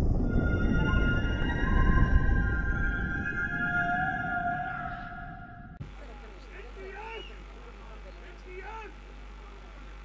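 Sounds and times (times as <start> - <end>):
eerie held tones: 0.0 - 5.8
low rumble: 0.0 - 5.8.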